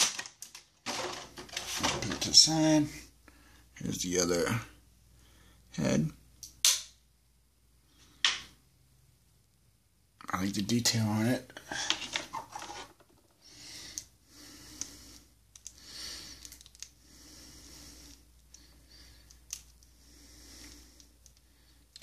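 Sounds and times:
soft rubbing of plastic figure: 0:12.0 - 0:13.4
small plastic clicks: 0:15.5 - 0:15.8, 0:16.4 - 0:16.9.

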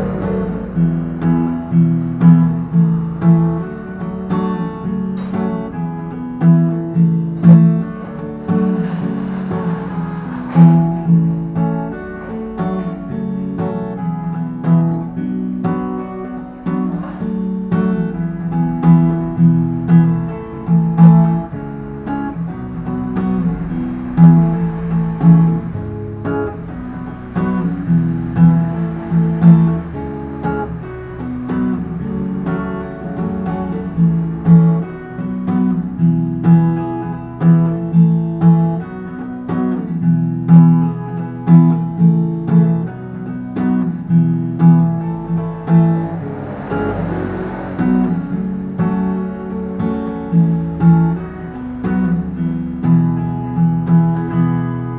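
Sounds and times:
acoustic guitar strumming chords: 0:00.0 - 0:54.9.

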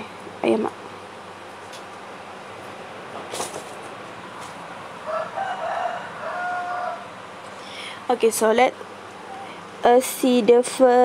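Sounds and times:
rooster crowing: 0:05.0 - 0:07.3.

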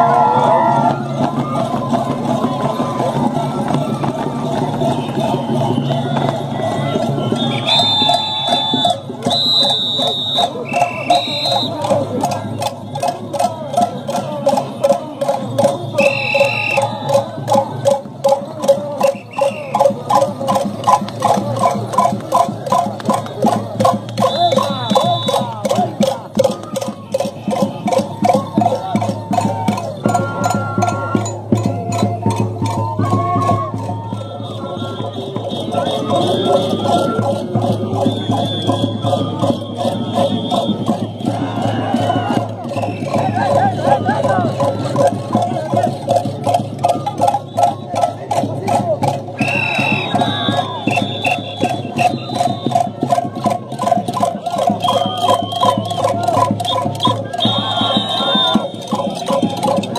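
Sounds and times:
steady drum beat: 0:00.0 - 0:59.9
end-blown flutes melody: 0:49.4 - 0:53.8, 0:54.6 - 0:59.6.

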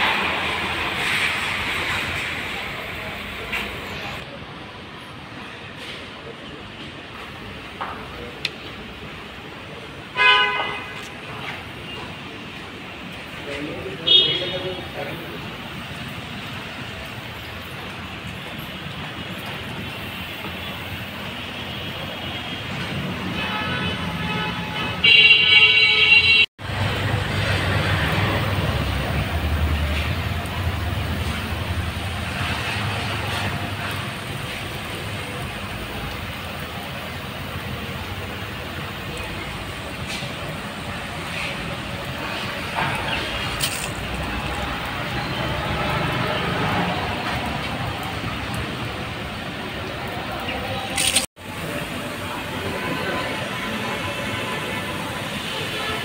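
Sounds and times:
street traffic noise: 0:00.0 - 0:56.0
vehicle horn honking: 0:10.2 - 0:11.0, 0:14.0 - 0:14.7, 0:23.3 - 0:26.5.

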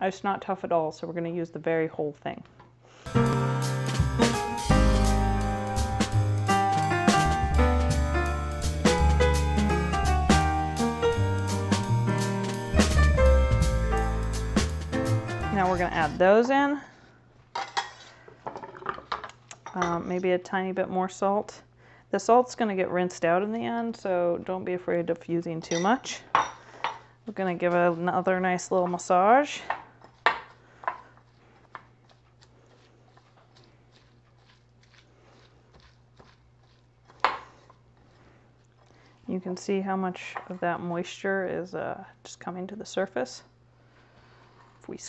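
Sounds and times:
knife scraping cutting board: 0:30.0 - 0:39.0
wet squishing and crunching: 0:30.1 - 0:39.2.

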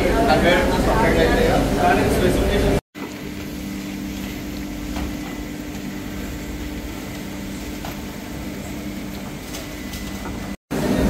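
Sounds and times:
factory machinery hum: 0:00.0 - 0:11.0.

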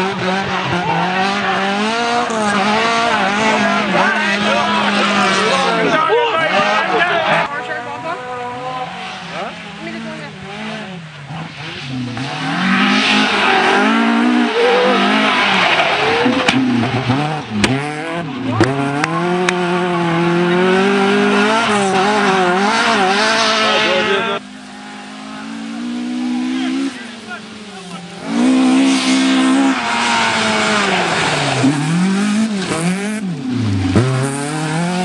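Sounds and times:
car engine revving: 0:00.0 - 0:35.0
tyre squeal: 0:12.7 - 0:17.1.

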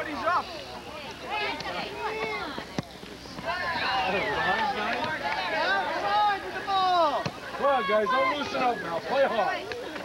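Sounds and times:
voices shouting: 0:03.4 - 0:09.9.

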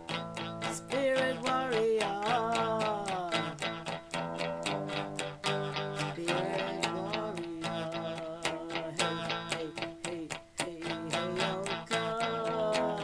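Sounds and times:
electric guitar strumming: 0:00.0 - 0:13.0
sliding guitar melody: 0:00.0 - 0:13.0.

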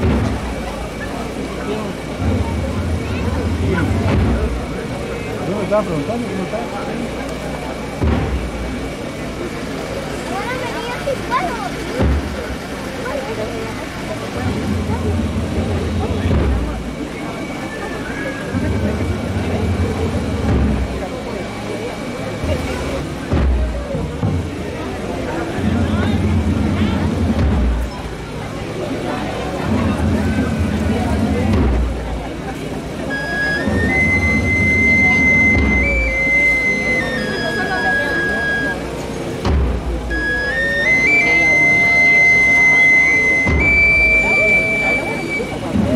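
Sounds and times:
deep drum beats: 0:00.0 - 0:01.3, 0:01.9 - 0:06.3, 0:07.9 - 0:09.3, 0:11.9 - 0:12.8, 0:14.2 - 0:17.2, 0:18.5 - 0:21.2, 0:22.4 - 0:37.9, 0:38.6 - 0:45.9
crowd talking: 0:00.0 - 0:45.9.

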